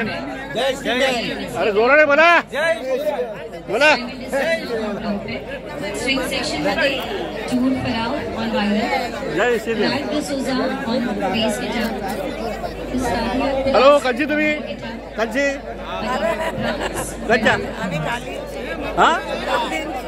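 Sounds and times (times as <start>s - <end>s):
crowd chatter: 0.0s - 20.0s.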